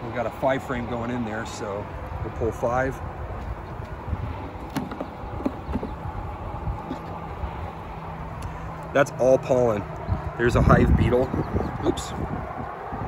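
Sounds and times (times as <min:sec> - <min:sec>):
steady low rumble: 0:00.0 - 0:13.0
wooden hive frame clicks and knocks: 0:04.6 - 0:06.0.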